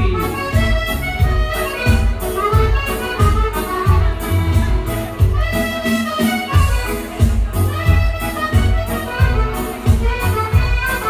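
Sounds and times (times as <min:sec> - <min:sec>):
steady low beat: 0:00.0 - 0:05.8, 0:06.6 - 0:11.0
button accordion playing dance tune: 0:00.0 - 0:11.0.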